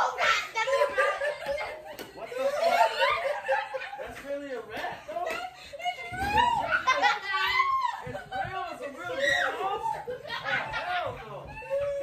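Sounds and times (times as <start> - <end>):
people laughing hard: 0.5 - 12.0.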